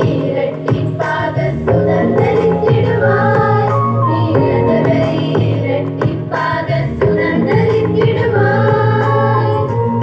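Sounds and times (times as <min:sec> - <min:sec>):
women's choir singing: 0:00.0 - 0:10.0.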